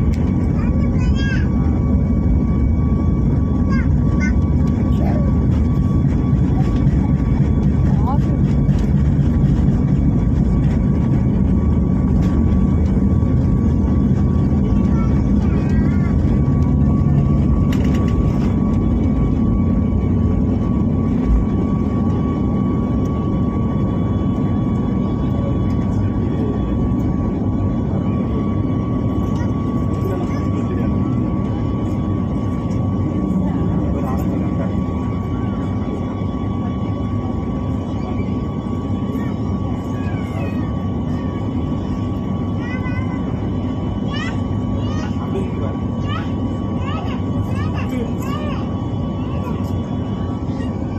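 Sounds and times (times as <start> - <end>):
jet engines rumbling from cabin: 0.0 - 50.9.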